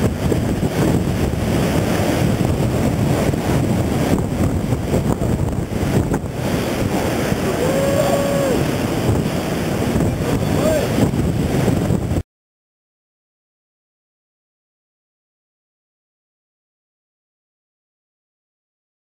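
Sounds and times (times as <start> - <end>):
surf breaking: 0.0 - 12.2
wind buffeting microphone: 0.0 - 12.2
person calling out: 7.5 - 8.6, 10.4 - 11.0.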